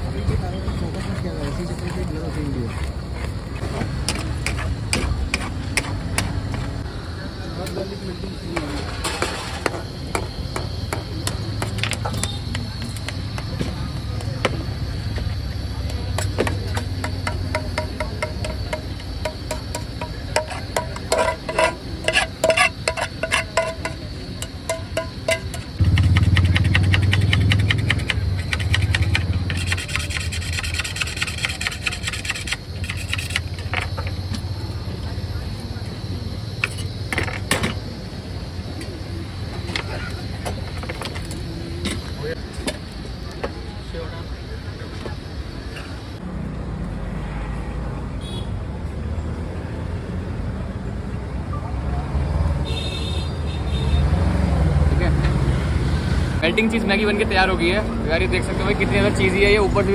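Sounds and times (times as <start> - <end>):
street traffic rumble: 0.0 - 59.9
cheese grater scraping: 20.4 - 24.0, 26.7 - 33.7
vehicle engine starting and rumbling: 25.7 - 29.6.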